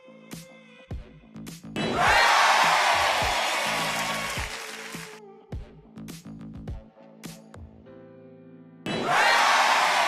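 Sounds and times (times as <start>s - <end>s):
background music with steady beat: 0.0s - 8.2s.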